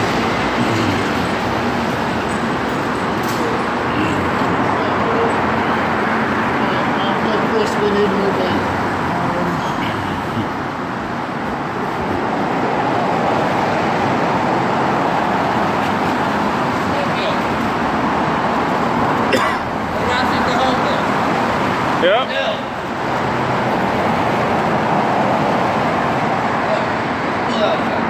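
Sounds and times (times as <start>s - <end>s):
indistinct voices: 0.0s - 11.0s
road traffic passing: 0.0s - 28.0s.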